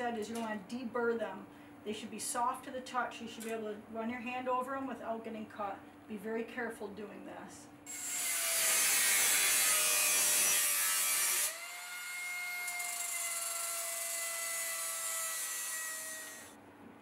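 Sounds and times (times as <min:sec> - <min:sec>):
angle grinder grinding steel: 0:07.9 - 0:16.6.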